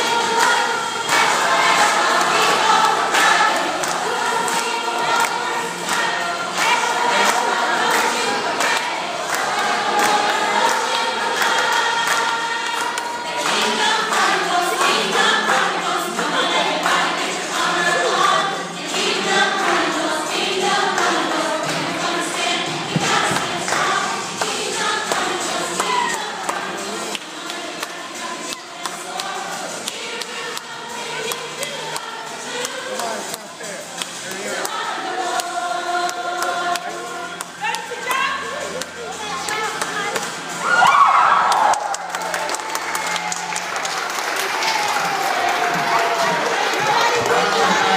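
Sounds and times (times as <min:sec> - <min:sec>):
group singing along: 0:00.0 - 0:39.0, 0:44.3 - 0:47.9
loud upbeat music: 0:00.0 - 0:47.9.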